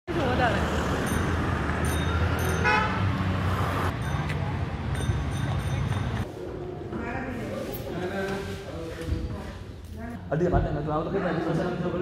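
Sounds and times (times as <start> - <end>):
road traffic rumble: 0.1 - 7.7
vehicle horn toot: 2.5 - 3.1.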